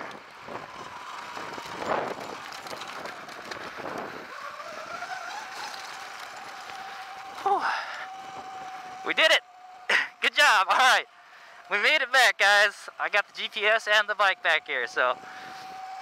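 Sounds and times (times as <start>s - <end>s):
electric motor whine: 0.0s - 11.9s, 12.8s - 16.0s
tyres on gravel: 0.0s - 16.0s.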